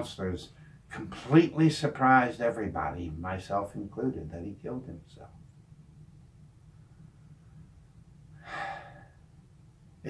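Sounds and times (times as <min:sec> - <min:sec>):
steady low hum: 0:00.0 - 0:10.0
man drawing a short breath: 0:08.4 - 0:09.2.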